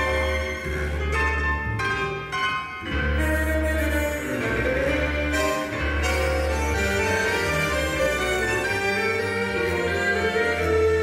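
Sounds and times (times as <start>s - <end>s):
string orchestra playing tango: 0.0s - 11.0s.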